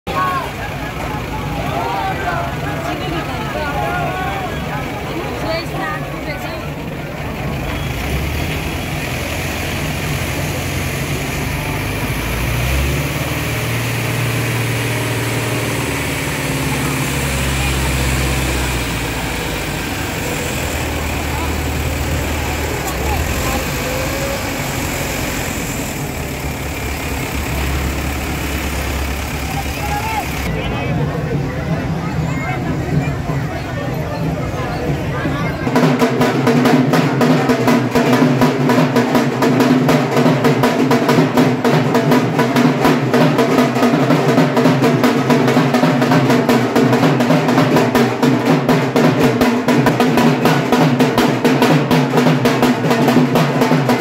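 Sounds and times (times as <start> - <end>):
crowd voices and shouts: 0.0 - 54.0
crane engine humming: 0.1 - 31.8.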